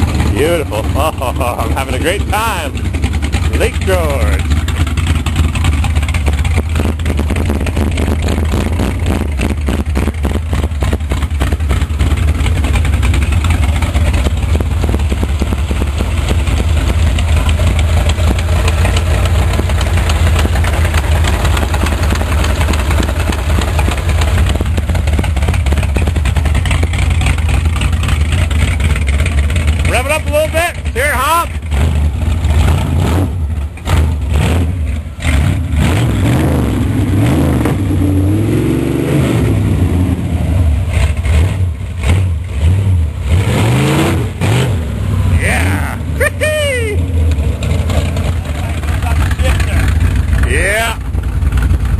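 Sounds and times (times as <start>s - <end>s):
car engine rumbling and revving: 0.0s - 51.9s.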